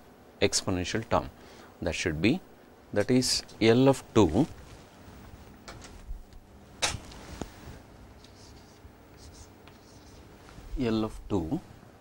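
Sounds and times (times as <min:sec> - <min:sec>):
chalk scratching on chalkboard: 0:08.2 - 0:10.4
man speaking: 0:10.8 - 0:11.7.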